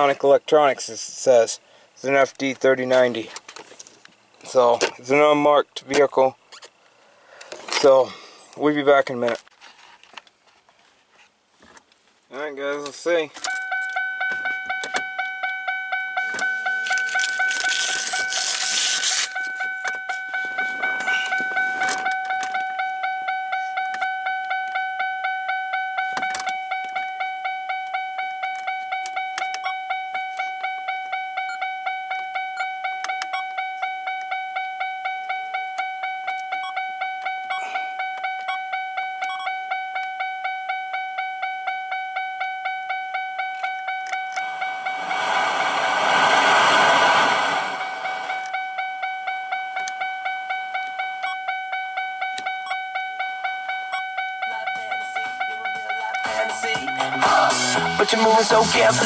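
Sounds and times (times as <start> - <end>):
car warning chime dinging: 12.4 - 59.0.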